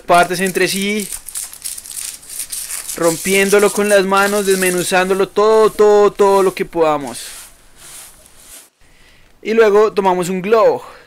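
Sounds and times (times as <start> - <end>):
styrofoam crumbling and crackling: 0.1 - 8.6.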